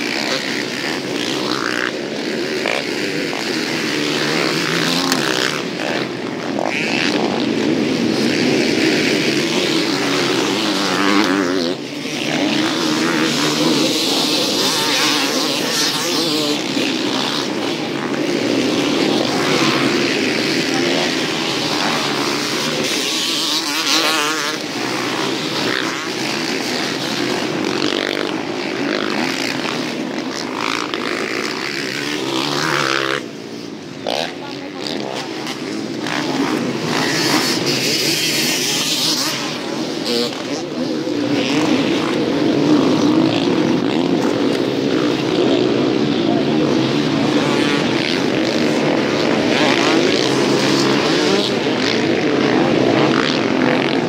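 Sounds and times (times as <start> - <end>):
motocross motorcycles revving: 0.0 - 54.0.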